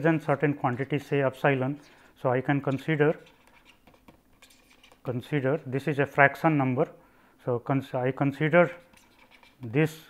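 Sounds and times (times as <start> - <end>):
stylus scratching on pen tablet: 1.8 - 5.7, 8.4 - 10.0.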